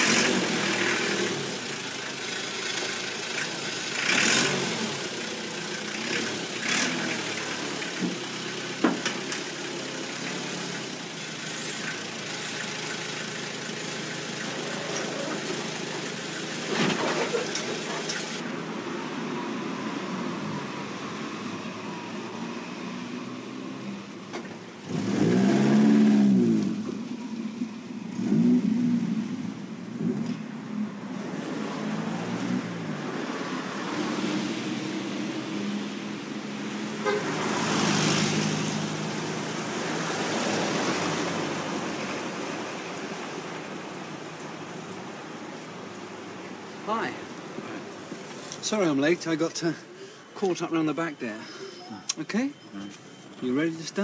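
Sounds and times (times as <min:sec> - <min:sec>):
dumper engine running and revving: 0:00.0 - 0:18.5, 0:22.4 - 0:47.2.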